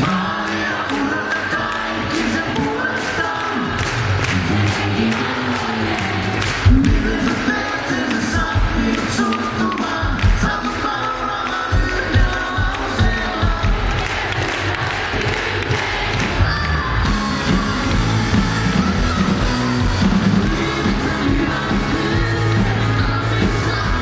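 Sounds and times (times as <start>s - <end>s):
live concert music with singing: 0.0s - 24.0s.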